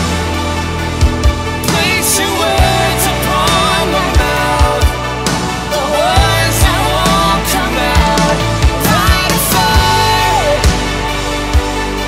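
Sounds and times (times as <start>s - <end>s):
rock band playing: 0.0s - 12.0s
person singing: 1.6s - 12.0s.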